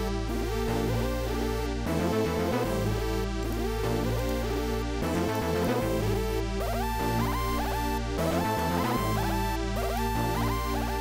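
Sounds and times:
sliding synth notes: 0.0 - 11.0
steady low bass: 0.0 - 11.0.

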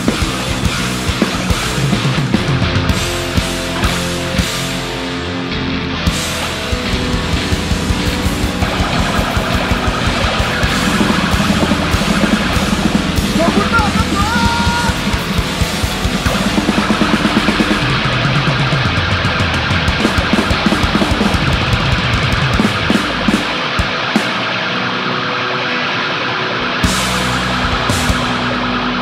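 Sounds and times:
heavy rock band playing: 0.0 - 29.0.

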